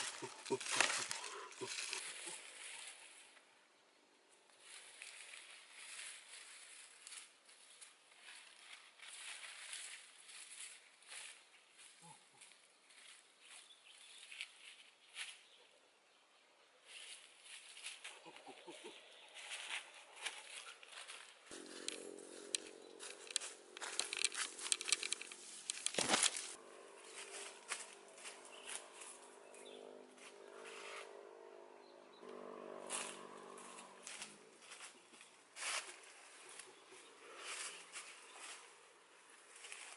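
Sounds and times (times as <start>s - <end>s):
dry leaves and twigs crackling: 0.0s - 3.5s, 4.4s - 15.7s, 16.8s - 31.3s, 32.2s - 39.9s
low steady hum: 21.5s - 34.9s.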